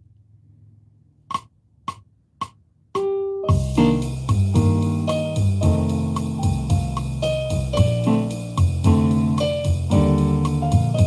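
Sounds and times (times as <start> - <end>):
light percussion: 1.3 - 11.0
bossa nova piano chords: 3.0 - 11.0
bass line: 3.5 - 11.0.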